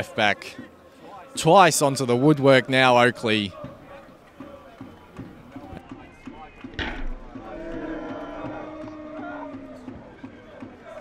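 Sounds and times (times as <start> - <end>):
players and spectators shouting: 0.0 - 11.0.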